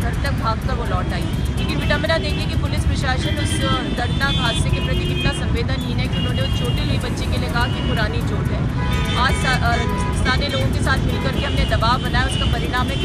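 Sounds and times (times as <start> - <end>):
people's voices: 0.0 - 13.0
road traffic rumble: 0.0 - 13.0.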